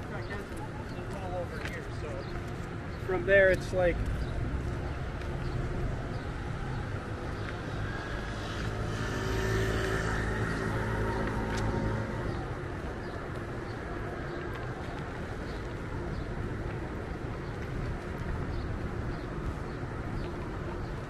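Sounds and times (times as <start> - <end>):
street noise: 0.0 - 21.0
vehicle engine humming past: 4.3 - 13.4.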